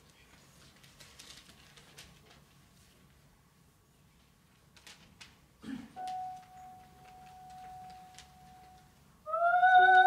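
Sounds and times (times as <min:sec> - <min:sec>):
soft steady high note: 0:06.0 - 0:10.0.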